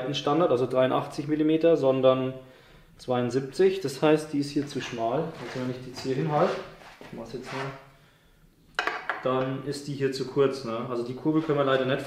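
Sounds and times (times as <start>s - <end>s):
person speaking: 3.0s - 7.9s, 9.2s - 12.0s.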